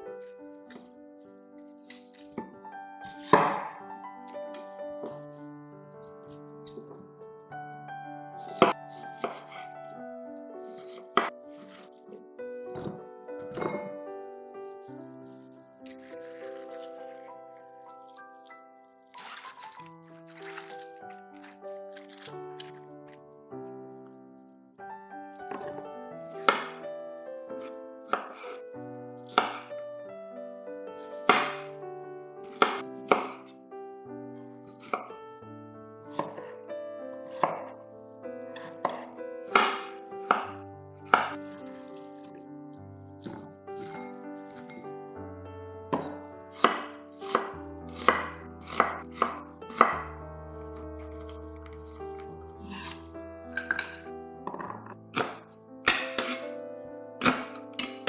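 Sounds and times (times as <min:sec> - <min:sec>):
soft background music: 0:00.0 - 0:58.0
knife chopping on wooden board: 0:01.8 - 0:03.8, 0:08.5 - 0:09.6, 0:10.6 - 0:11.9, 0:12.7 - 0:13.9, 0:26.4 - 0:26.8, 0:27.6 - 0:28.6, 0:29.2 - 0:29.7, 0:31.1 - 0:31.7, 0:32.4 - 0:33.5, 0:36.1 - 0:36.5, 0:37.3 - 0:37.8, 0:38.6 - 0:42.1, 0:45.9 - 0:50.1, 0:51.0 - 0:56.5, 0:57.2 - 0:58.0
knife cutting onto wooden board: 0:51.8 - 0:54.0.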